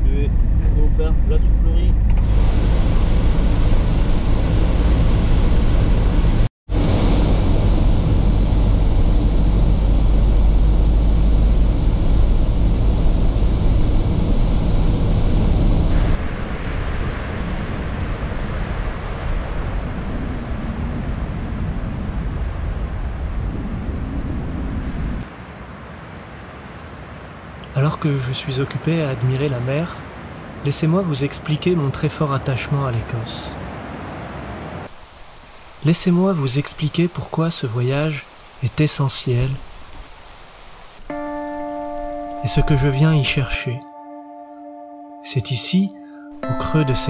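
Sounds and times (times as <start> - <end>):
low engine hum: 0.0 - 16.4.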